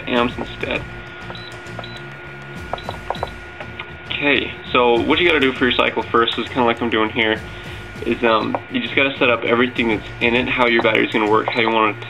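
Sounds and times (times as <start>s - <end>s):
faint background music: 0.0s - 12.0s
keypad button clicks: 2.7s - 3.4s.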